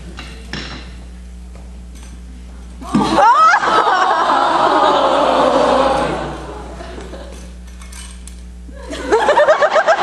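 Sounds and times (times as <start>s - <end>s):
audience laughing: 2.9s - 7.5s, 8.7s - 10.0s.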